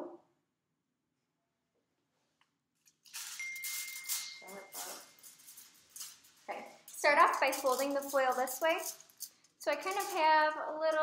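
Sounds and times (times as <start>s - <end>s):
foils crinkling and rustling: 2.8s - 11.0s
thin steady high tone: 3.2s - 5.2s.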